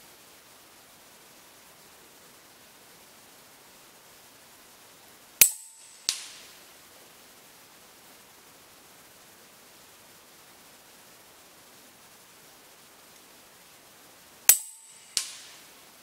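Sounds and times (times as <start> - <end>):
slug hitting metal target: 5.4 - 6.4, 14.5 - 15.5
air rifle shot: 14.5 - 15.6.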